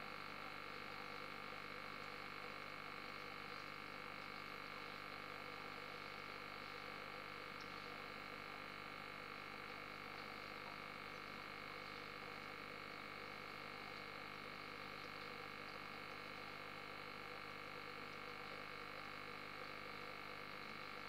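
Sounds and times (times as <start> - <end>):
aquarium equipment humming: 0.0 - 21.0.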